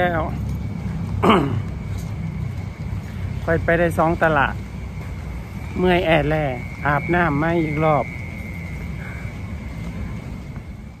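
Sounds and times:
steady high-pitched tone: 0:05.4 - 0:10.4.

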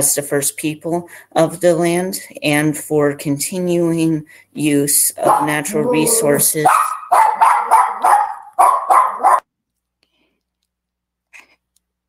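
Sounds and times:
dog barking: 0:05.2 - 0:09.5.

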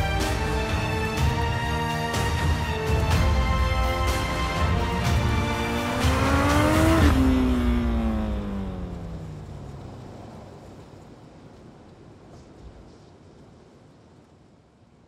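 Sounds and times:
motorcycle engine passing at speed: 0:04.8 - 0:11.4.

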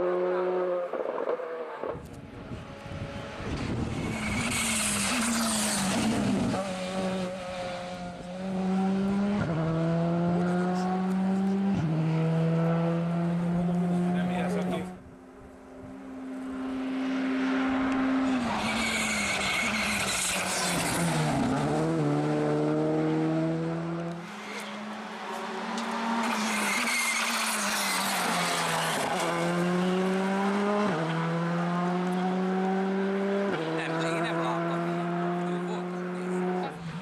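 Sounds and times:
rally car engine revving: 0:00.0 - 0:15.0, 0:15.7 - 0:37.0.

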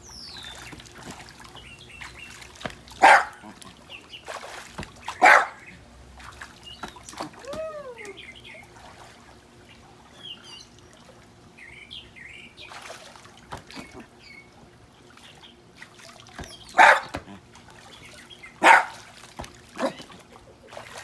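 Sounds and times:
light water sounds: 0:00.0 - 0:21.0
small dog barking: 0:03.0 - 0:03.5, 0:05.2 - 0:05.6, 0:16.8 - 0:17.2, 0:18.6 - 0:19.0.

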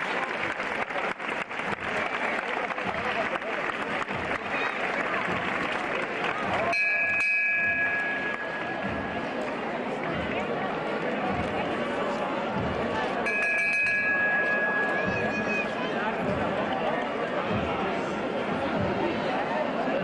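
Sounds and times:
crowd chatter: 0:00.0 - 0:20.0
small bell ringing: 0:06.7 - 0:09.2, 0:13.3 - 0:15.6.

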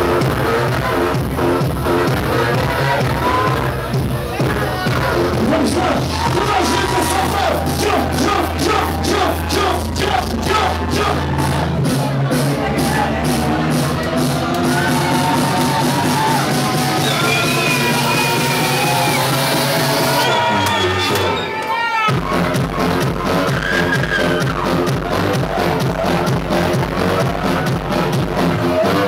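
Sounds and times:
electronic dance music: 0:00.0 - 0:29.0.

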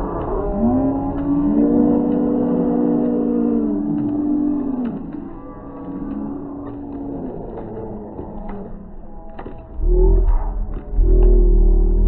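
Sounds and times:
spectators cheering: 0:00.0 - 0:08.8.

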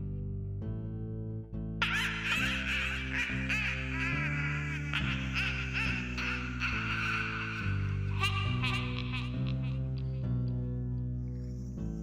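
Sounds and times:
sustained low music chords: 0:00.0 - 0:12.0
witch's cackle: 0:01.8 - 0:10.2.

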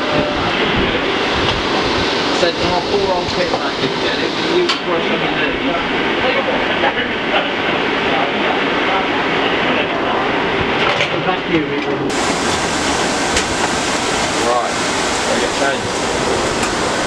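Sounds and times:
scattered voices: 0:00.0 - 0:17.0
man speaking: 0:02.3 - 0:10.3, 0:14.4 - 0:16.5.

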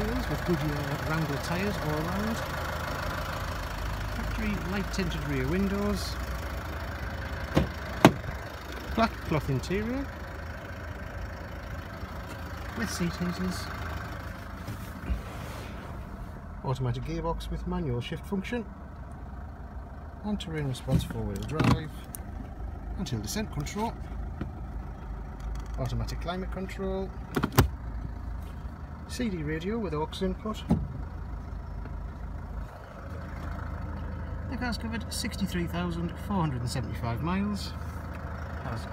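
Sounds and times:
diesel engine idling: 0:00.0 - 0:38.9.

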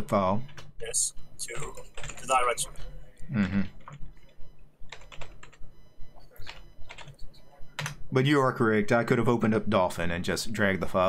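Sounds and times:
typing on computer keyboard: 0:04.9 - 0:05.6, 0:06.4 - 0:07.2.

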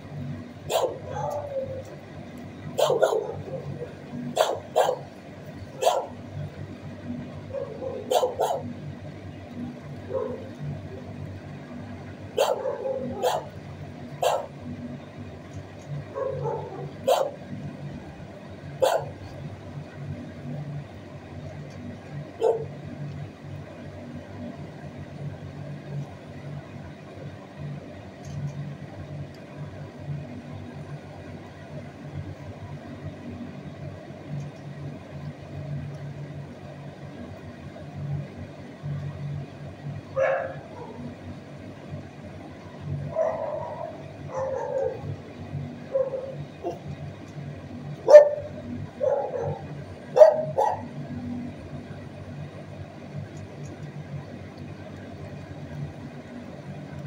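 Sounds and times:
steady low hum: 0:00.0 - 0:57.0
dogs barking: 0:00.6 - 0:01.9, 0:02.7 - 0:06.3, 0:07.4 - 0:08.8, 0:10.0 - 0:10.7, 0:12.3 - 0:13.6, 0:14.2 - 0:14.6, 0:16.1 - 0:17.4, 0:18.8 - 0:19.3, 0:22.4 - 0:22.8, 0:40.2 - 0:41.1, 0:43.1 - 0:45.2, 0:45.8 - 0:46.9, 0:48.0 - 0:51.0.

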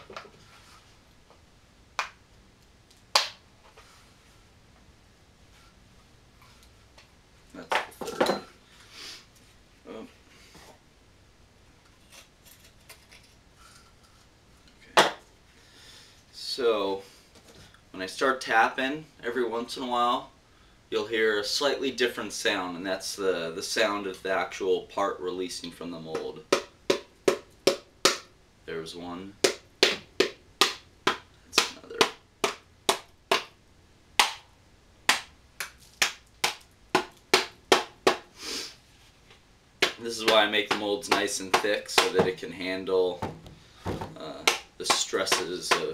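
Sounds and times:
soft rustle: 0:00.2 - 0:01.3, 0:03.6 - 0:04.8, 0:38.7 - 0:39.5
rubber mallet knocking mold: 0:26.1 - 0:28.3, 0:29.4 - 0:33.6, 0:35.1 - 0:38.3, 0:39.8 - 0:42.4, 0:43.2 - 0:45.9.

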